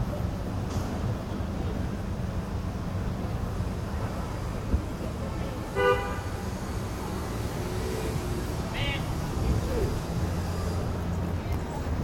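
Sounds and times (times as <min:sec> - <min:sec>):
city street bustle: 0:00.0 - 0:12.0
low traffic rumble: 0:00.0 - 0:12.0.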